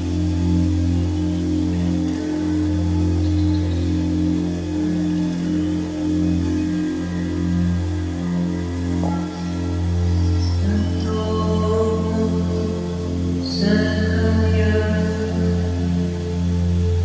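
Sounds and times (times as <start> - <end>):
singing bowl humming: 0.0 - 17.0.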